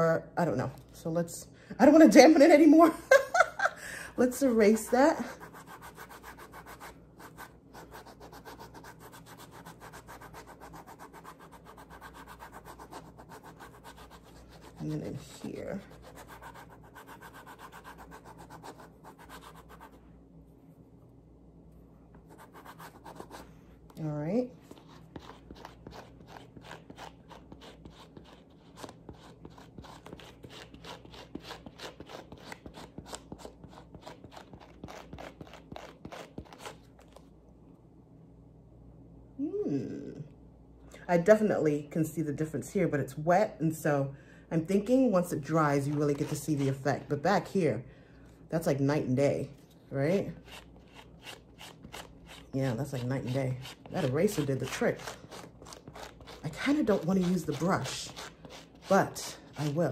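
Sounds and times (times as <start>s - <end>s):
eraser scrubbing suede: 4.5s - 20.0s, 24.6s - 37.1s, 50.4s - 59.9s.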